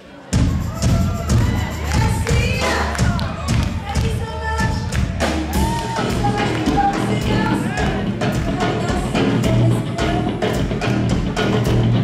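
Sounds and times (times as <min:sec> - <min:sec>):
heavy drums thumping: 0:00.4 - 0:12.0
live rock band playing: 0:00.4 - 0:12.0.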